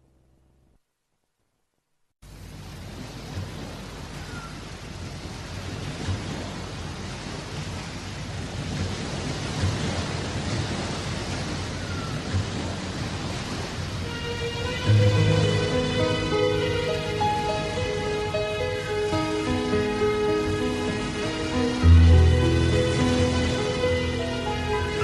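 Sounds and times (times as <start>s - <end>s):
steady rushing noise: 13.7s - 25.0s
song: 14.0s - 25.0s.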